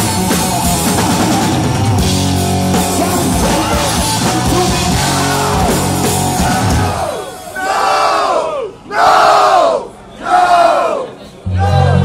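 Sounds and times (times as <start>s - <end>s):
heavy metal bass and guitars: 0.0s - 7.6s
crowd shouting in unison: 3.2s - 12.0s.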